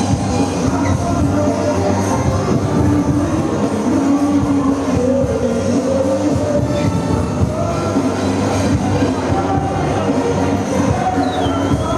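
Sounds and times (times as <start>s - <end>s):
loud music with heavy beat: 0.0s - 11.9s.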